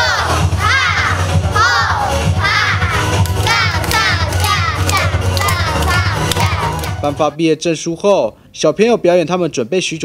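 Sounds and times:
children's voices: 0.0 - 6.9
dance music with low beat: 0.0 - 7.2.

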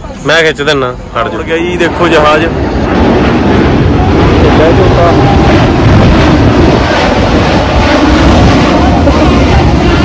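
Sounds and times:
jet airliner passing overhead: 0.0 - 10.0.

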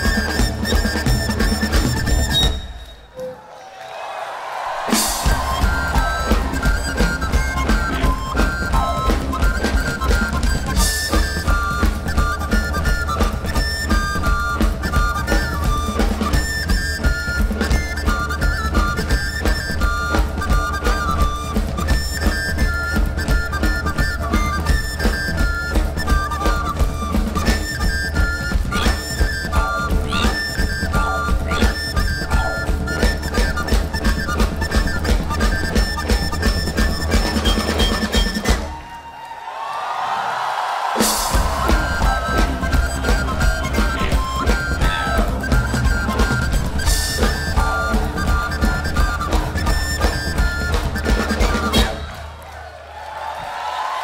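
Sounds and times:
fast drum beat: 4.8 - 38.8, 41.0 - 52.4
wind instrument melody: 4.9 - 38.7, 41.0 - 52.3.

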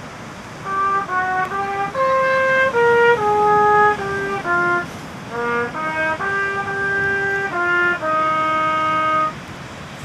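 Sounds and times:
faint background noise: 0.0 - 10.0
trumpet holding a note: 0.6 - 9.4.

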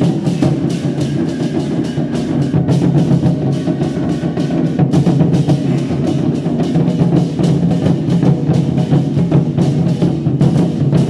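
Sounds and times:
large drums beating fast: 0.0 - 11.0.

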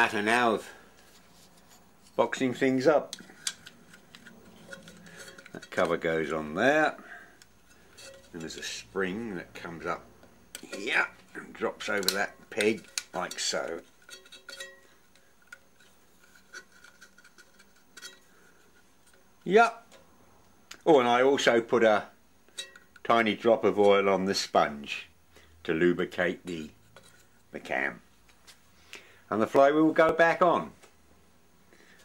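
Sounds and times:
light metallic clicks and taps: 11.8 - 13.5
small metallic clicks: 11.8 - 18.2.

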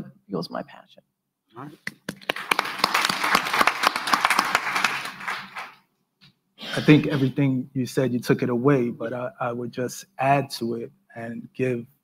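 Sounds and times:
audience applauding: 1.8 - 5.8.

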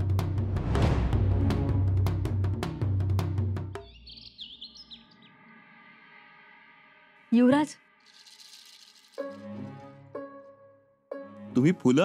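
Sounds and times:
quiet bird chirps: 3.8 - 6.4.

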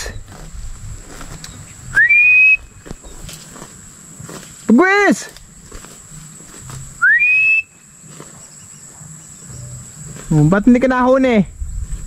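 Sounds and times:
rising whistle: 1.9 - 2.7, 7.0 - 7.8.

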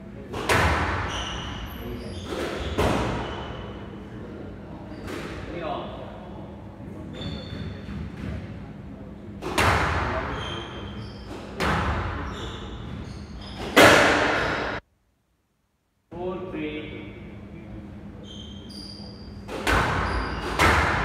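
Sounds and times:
squash ball strikes echoing: 0.3 - 1.1, 9.4 - 10.3, 13.6 - 14.8, 19.5 - 21.0.

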